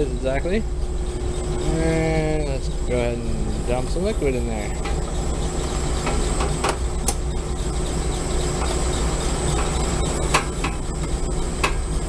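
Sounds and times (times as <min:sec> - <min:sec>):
machinery hum: 0:00.0 - 0:12.0
thin high whine: 0:00.0 - 0:12.0.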